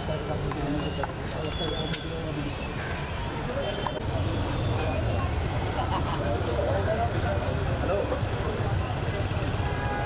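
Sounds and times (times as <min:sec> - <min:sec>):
indistinct chatter of voices: 0:00.0 - 0:10.0
traffic rumble: 0:00.0 - 0:10.0.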